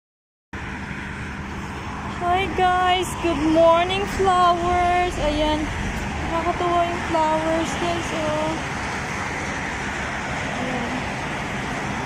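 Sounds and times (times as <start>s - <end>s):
low outdoor rumble: 0.6s - 12.0s.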